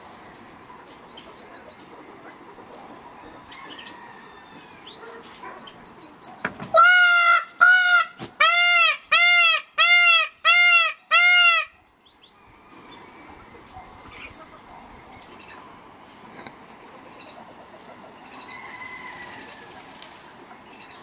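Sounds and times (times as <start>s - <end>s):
peacock calling: 6.7s - 14.6s.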